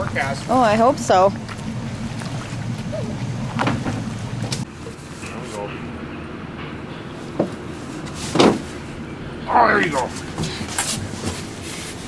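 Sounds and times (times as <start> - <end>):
boat engine idling: 0.0 - 11.7
knocks of steps on hull: 8.3 - 8.7.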